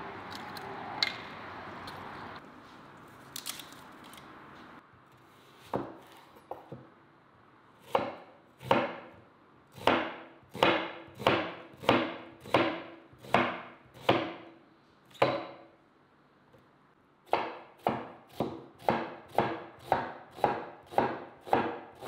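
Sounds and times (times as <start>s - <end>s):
knife chopping onion on wooden board: 5.6s - 6.9s, 7.8s - 9.2s, 9.8s - 14.6s, 15.2s - 15.7s, 17.3s - 22.0s.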